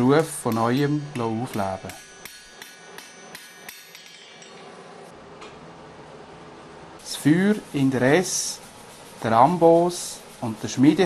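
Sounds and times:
hammer striking iron on anvil: 0.0s - 4.8s.

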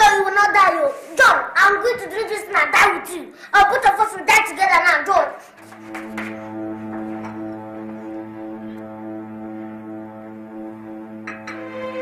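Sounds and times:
child yelling: 0.0s - 5.4s
low steady music: 5.4s - 12.0s.

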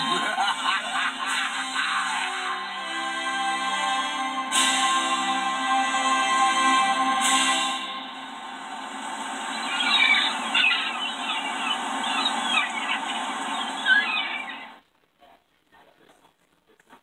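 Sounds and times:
music through tv speaker: 0.0s - 14.8s
high squeaky chirping calls: 9.4s - 14.8s.

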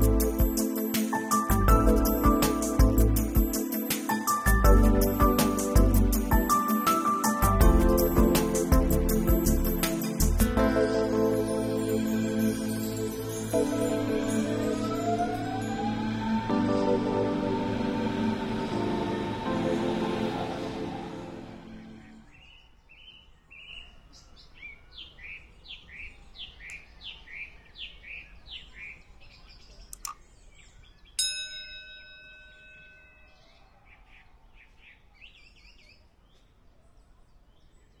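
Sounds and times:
background music: 0.0s - 22.3s
bright bell-like chime: 10.8s - 16.0s, 31.2s - 33.6s
birds chirping: 20.4s - 31.3s.

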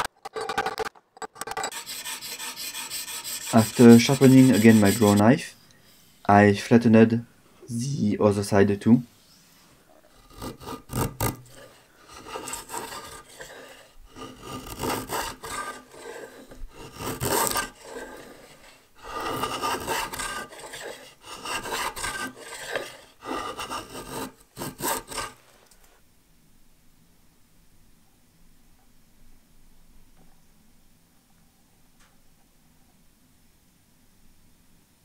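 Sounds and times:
draw knife scraping wood: 0.0s - 5.3s, 10.1s - 25.4s.

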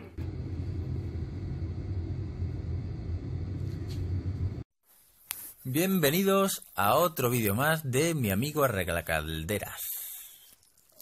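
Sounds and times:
boiler burner humming: 0.0s - 4.7s.

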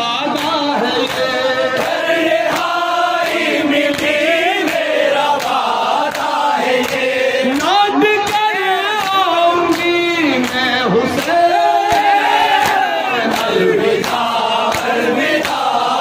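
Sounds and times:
men singing lament in unison: 0.0s - 16.0s
person reciting into microphone: 0.0s - 16.0s.

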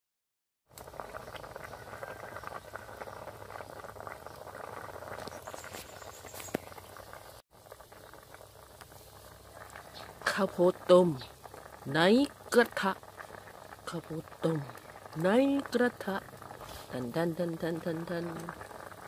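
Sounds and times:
fire popping: 0.7s - 19.0s
water boiling hard in wok: 0.7s - 19.0s.

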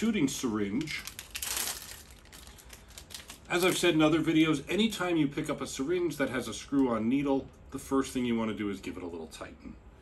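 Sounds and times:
wrapper crinkling and tearing: 0.5s - 4.1s.

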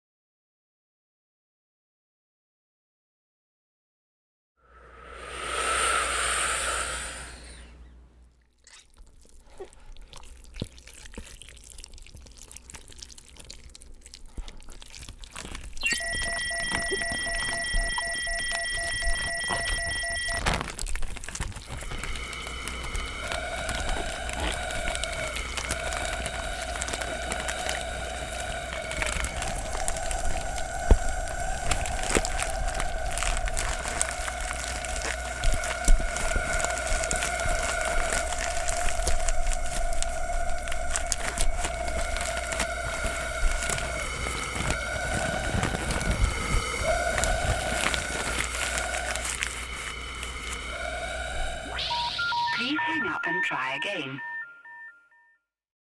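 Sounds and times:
low wavering electronic tone: 15.8s - 20.7s, 50.9s - 53.4s
steady high electronic tone: 15.8s - 20.7s, 50.1s - 55.0s.

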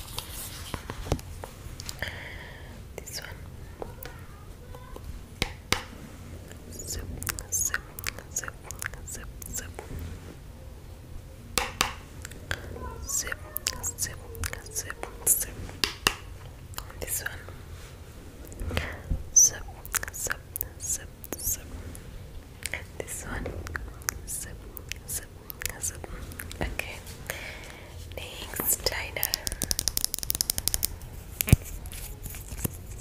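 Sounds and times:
soft whispering: 1.8s - 5.2s, 6.2s - 10.5s, 12.2s - 15.8s, 16.7s - 30.1s
sharp clicks and taps: 28.6s - 31.8s.

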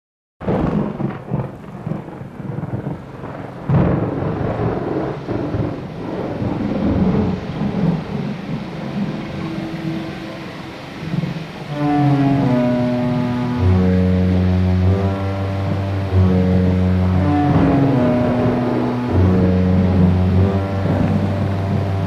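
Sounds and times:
loud thunder crack: 0.4s - 22.0s
rolling thunder: 0.4s - 22.0s
steady rain: 0.4s - 22.0s.

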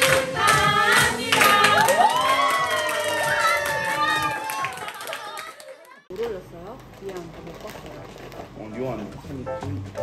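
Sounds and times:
hand-clapping: 0.0s - 6.0s.

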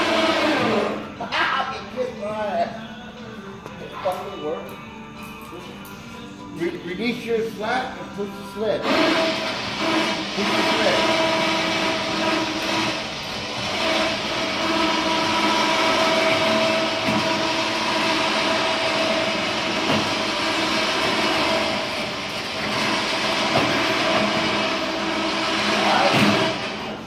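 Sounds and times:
machine whining steadily: 0.0s - 27.0s.

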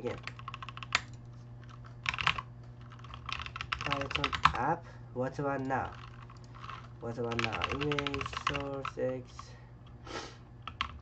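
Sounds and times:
computer keyboard typing: 0.0s - 4.7s, 5.4s - 9.4s, 10.6s - 11.0s.

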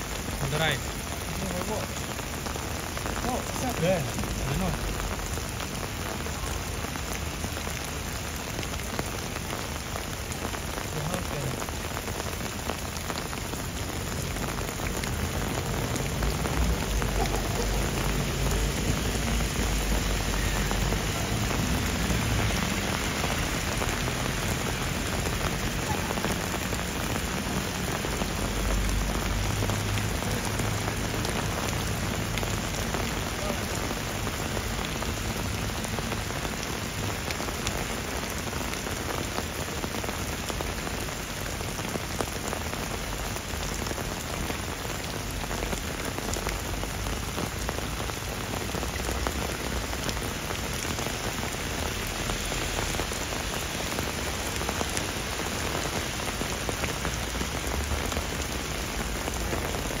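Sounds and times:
heavy rain on cars and pavement: 0.0s - 60.0s.

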